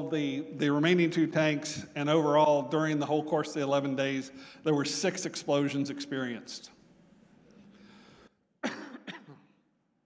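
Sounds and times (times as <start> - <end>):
man coughing: 8.6 - 9.6.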